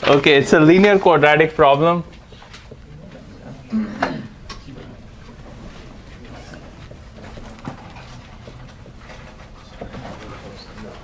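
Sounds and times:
room noise: 0.0s - 11.0s
marker tapping: 6.6s - 10.2s.

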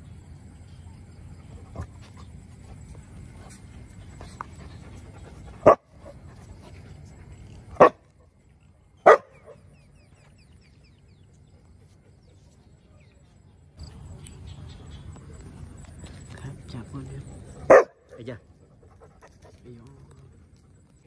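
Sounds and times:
dog barking: 5.6s - 5.9s, 7.8s - 8.0s, 9.0s - 9.6s, 17.6s - 18.3s.

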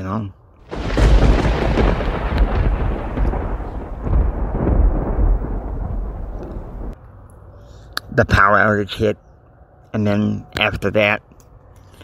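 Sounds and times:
thunderclap rumbling: 0.6s - 7.0s.

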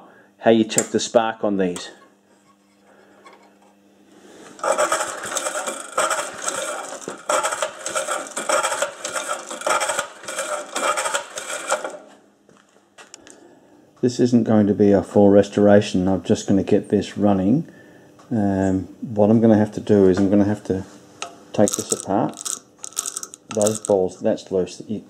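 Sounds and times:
lawn mower engine cranking: 4.6s - 12.2s, 21.6s - 24.0s.

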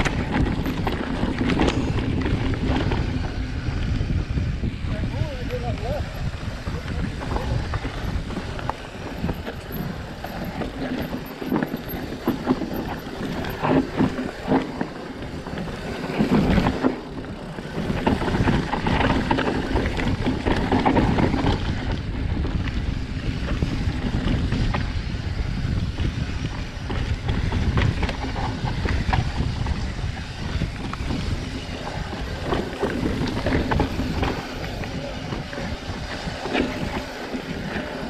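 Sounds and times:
bike clicks and rattles: 0.0s - 38.0s
tyres rolling over dirt and rocks: 0.0s - 38.0s
wind buffeting microphone: 0.0s - 38.0s.

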